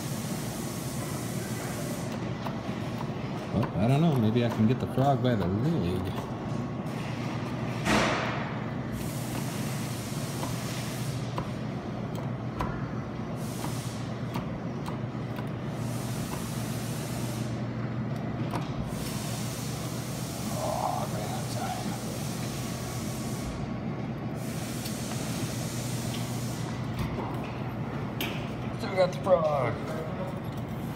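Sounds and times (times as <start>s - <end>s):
steady electric hum: 0.0s - 30.9s.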